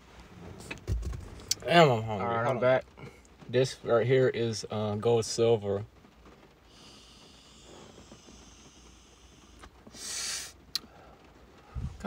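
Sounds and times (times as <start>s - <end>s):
vapour exhale hissing: 6.7s - 11.9s.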